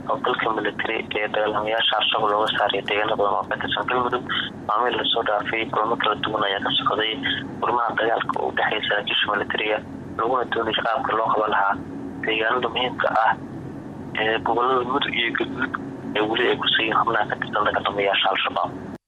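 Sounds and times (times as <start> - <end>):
person reading news report: 0.0 - 18.9.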